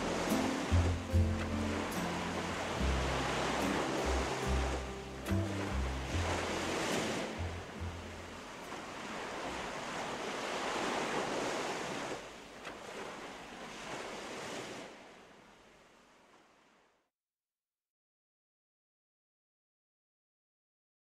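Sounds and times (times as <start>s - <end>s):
background music: 0.0s - 8.7s
sea waves washing in: 0.0s - 17.0s.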